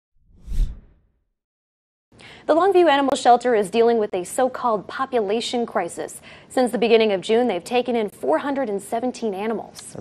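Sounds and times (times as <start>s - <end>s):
whoosh with low boom: 0.2s - 1.0s.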